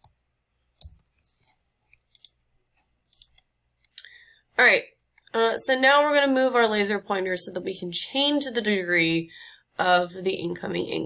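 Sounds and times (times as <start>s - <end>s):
computer mouse clicking: 0.8s - 1.1s, 1.9s - 2.4s, 3.1s - 4.1s.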